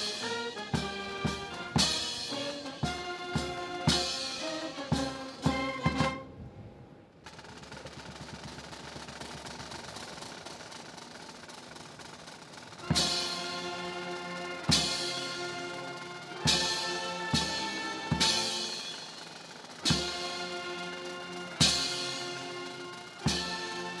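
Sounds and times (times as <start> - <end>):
sharp drum strokes: 0.0 - 6.2, 7.2 - 24.0
military brass band: 0.0 - 6.4, 12.8 - 24.0
snare drum roll: 0.0 - 6.5, 7.1 - 24.0.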